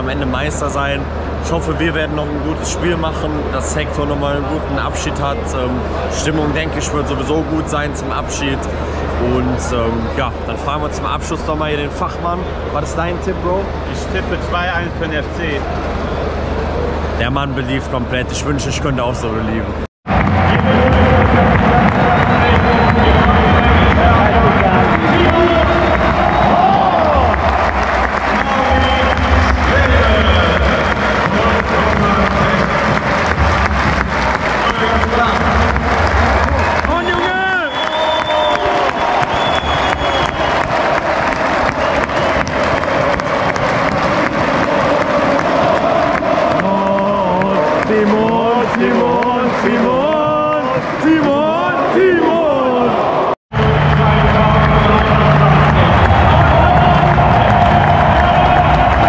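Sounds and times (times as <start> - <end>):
crowd cheering: 0.0 - 17.8, 20.1 - 59.0
crowd clapping: 20.1 - 52.4, 53.5 - 59.0
crowd singing and chanting: 40.5 - 59.0.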